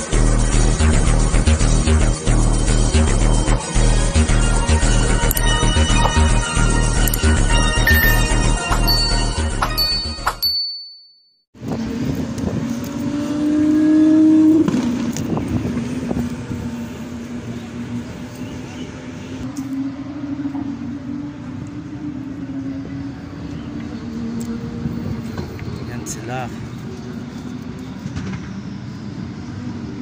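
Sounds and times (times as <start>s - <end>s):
distant engine drone: 11.6s - 30.0s.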